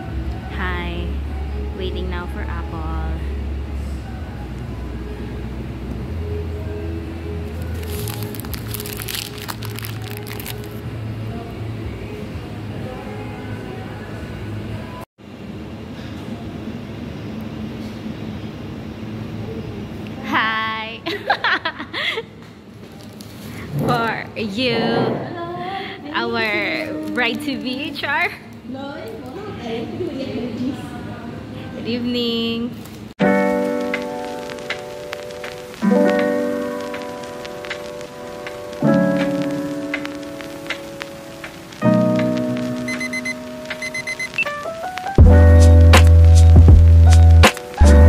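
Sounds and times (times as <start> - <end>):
meat sizzling and crackling: 7.7 - 10.7
steady hiss: 33.2 - 48.0.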